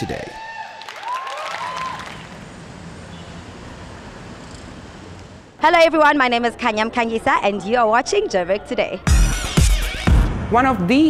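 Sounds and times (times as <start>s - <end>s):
audience applauding: 0.0s - 2.4s
cheers and whistles: 0.2s - 2.3s.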